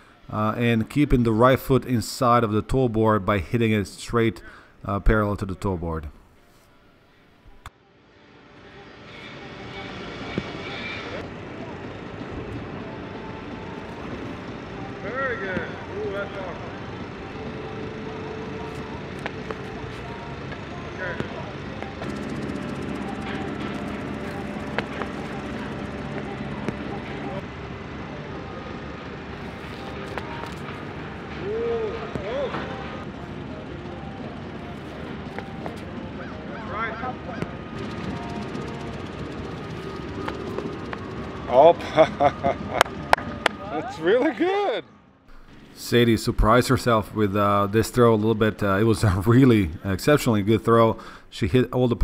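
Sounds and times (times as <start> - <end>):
loud exclamation: 31.4 - 32.6
people laughing: 41.6 - 44.6.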